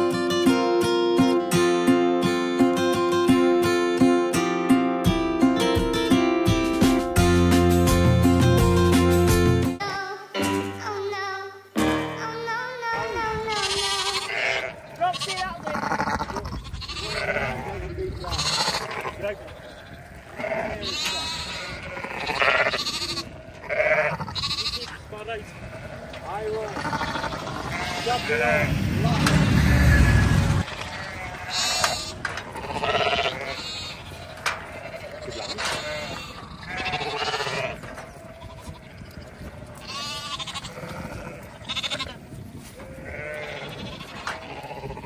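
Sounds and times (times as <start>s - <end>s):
guitar music: 0.0s - 14.5s
sheep and lambs bleating: 12.3s - 45.0s
loud low rumble: 28.6s - 30.6s.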